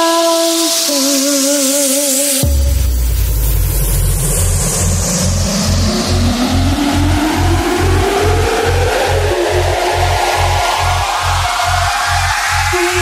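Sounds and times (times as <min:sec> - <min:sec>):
pulsing dance bass: 0:00.9 - 0:13.0
long rising sweep: 0:02.1 - 0:13.0.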